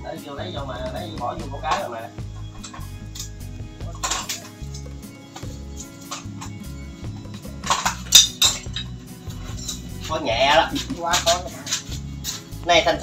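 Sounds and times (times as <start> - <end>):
background music with steady beat: 0.0 - 13.0
metal utensils clinking on cookware: 1.6 - 13.0.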